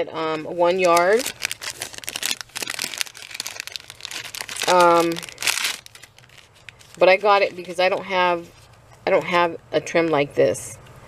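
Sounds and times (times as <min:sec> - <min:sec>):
plastic packaging crinkling: 0:00.5 - 0:08.8.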